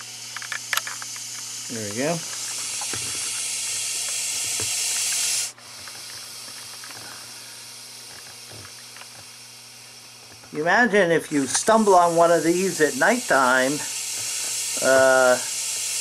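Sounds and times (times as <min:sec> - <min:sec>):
snake hissing: 0:01.2 - 0:16.0.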